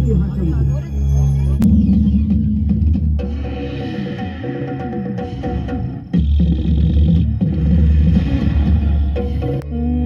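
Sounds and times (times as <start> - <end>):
deep rumbling music over loudspeakers: 0.0 - 10.0.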